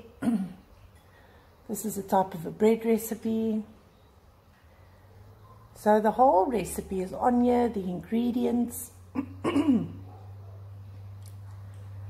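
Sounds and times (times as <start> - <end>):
woman clearing her throat: 0.2 - 0.6, 9.1 - 10.0.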